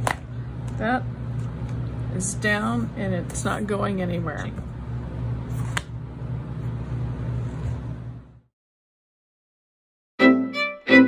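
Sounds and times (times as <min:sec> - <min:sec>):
low mechanical hum: 0:00.0 - 0:08.5.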